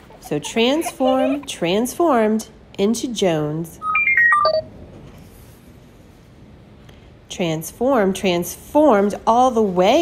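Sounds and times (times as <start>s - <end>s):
short electronic beep tones: 3.8s - 4.7s.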